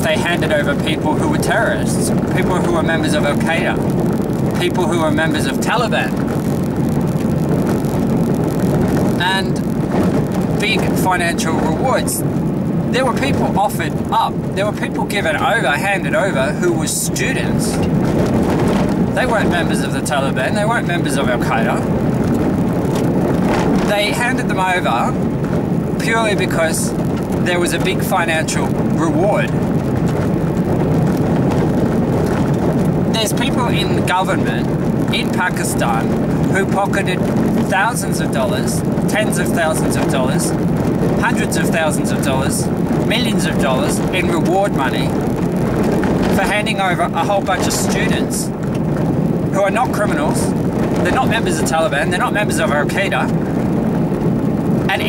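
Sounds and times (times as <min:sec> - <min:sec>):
car engine and tyres rumbling: 0:00.0 - 0:55.0
vehicle driving on dirt road: 0:00.0 - 0:55.0.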